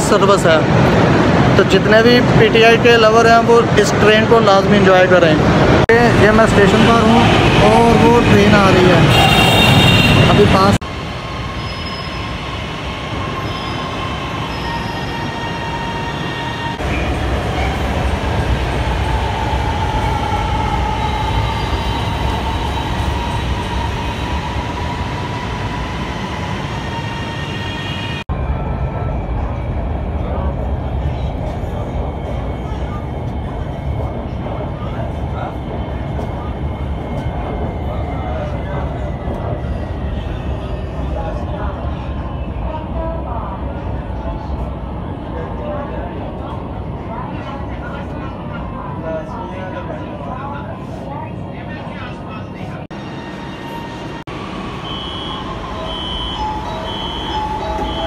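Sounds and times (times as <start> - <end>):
train rumbling: 0.0 - 58.0
train running from inside carriage: 0.0 - 58.0.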